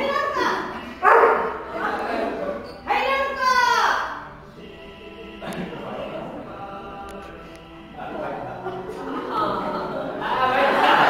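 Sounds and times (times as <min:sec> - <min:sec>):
dog barking: 0:01.0 - 0:01.6.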